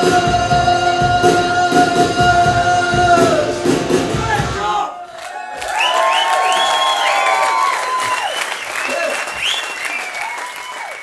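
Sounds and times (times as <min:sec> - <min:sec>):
audience applauding and cheering: 0:05.0 - 0:11.0
whoops: 0:05.1 - 0:11.0.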